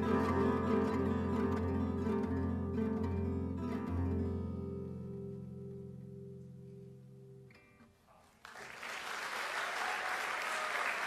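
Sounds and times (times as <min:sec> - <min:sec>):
acoustic guitar chord ringing: 0:00.0 - 0:07.9.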